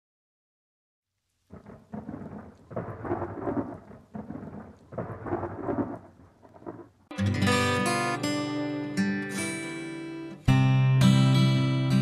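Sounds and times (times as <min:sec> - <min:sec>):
thunder rumbling: 0:01.4 - 0:07.1.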